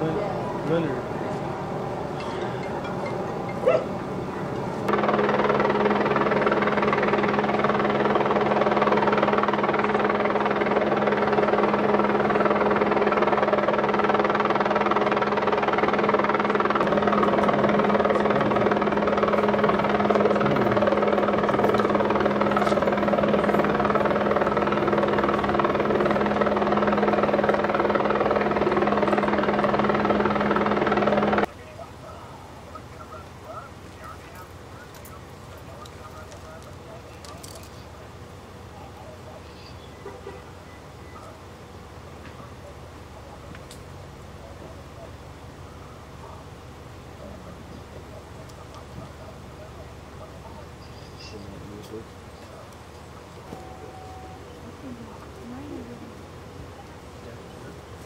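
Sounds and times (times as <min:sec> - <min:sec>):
loud mechanical drone: 0:00.0 - 0:31.5.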